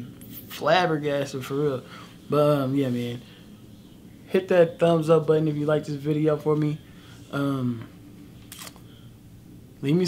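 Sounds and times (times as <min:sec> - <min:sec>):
man speaking: 0:00.0 - 0:03.3, 0:04.3 - 0:08.0.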